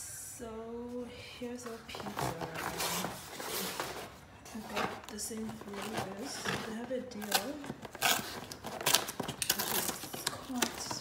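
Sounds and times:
cardboard box scraping and rustling: 2.0s - 5.0s.

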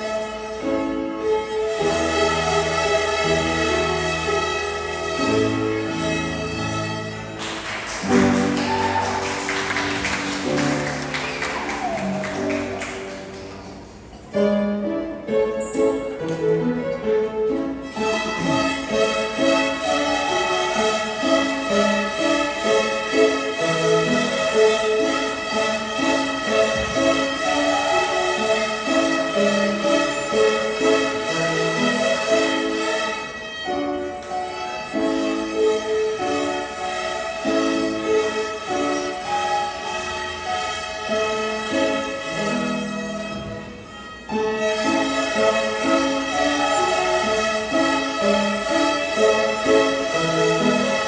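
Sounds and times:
children playing violins: 0.0s - 51.0s.

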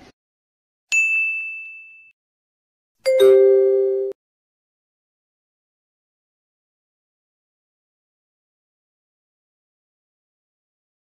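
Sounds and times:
bright ding: 1.0s - 2.1s.

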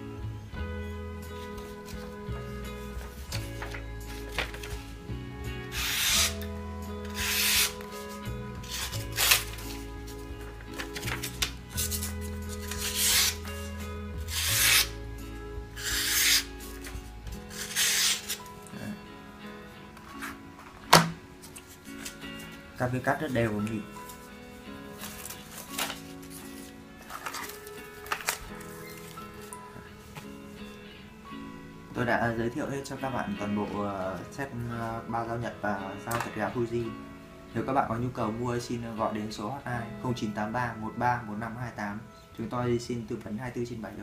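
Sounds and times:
background music with low notes: 0.0s - 44.0s
knife slicing through paper: 5.7s - 6.5s, 7.1s - 9.8s, 10.8s - 15.0s, 15.8s - 16.9s, 17.5s - 18.5s.

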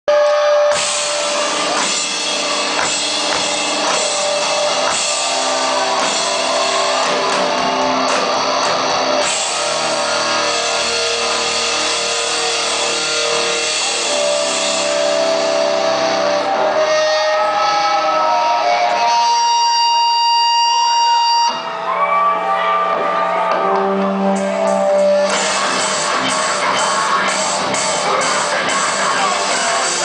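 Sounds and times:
live rock band playing: 0.1s - 21.7s, 23.0s - 30.0s
electric guitars ringing sustained notes: 0.1s - 30.0s.

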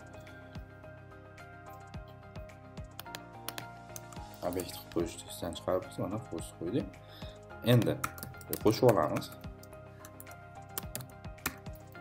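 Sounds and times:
background music: 0.0s - 12.0s
computer keyboard keystrokes: 2.8s - 4.6s, 7.7s - 9.3s, 10.1s - 11.8s.

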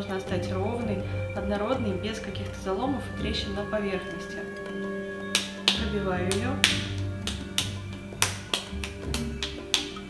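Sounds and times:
background music: 0.0s - 10.0s
clay slapped between palms: 5.4s - 10.0s.

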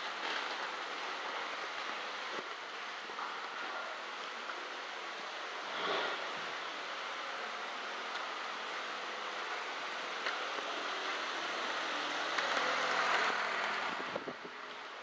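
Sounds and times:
steady rushing noise: 4.8s - 15.0s.

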